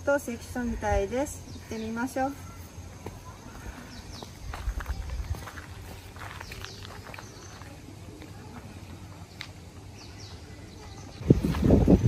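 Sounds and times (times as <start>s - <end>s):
footsteps in sandals: 2.9s - 9.8s
low microphone rumble: 11.1s - 12.0s.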